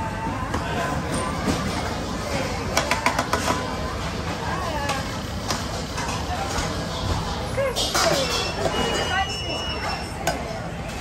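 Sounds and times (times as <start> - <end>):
restaurant voices: 0.0 - 11.0
metal utensils clinking: 7.6 - 10.2.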